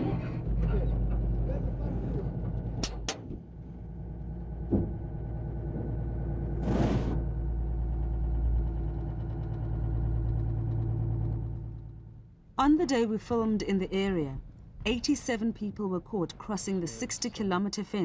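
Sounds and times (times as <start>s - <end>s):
vehicle engine running: 3.5s - 12.5s.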